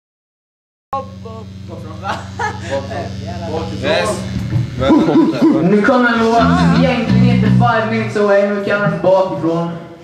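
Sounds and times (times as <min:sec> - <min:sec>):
amplifier hum: 0:01.0 - 0:09.8.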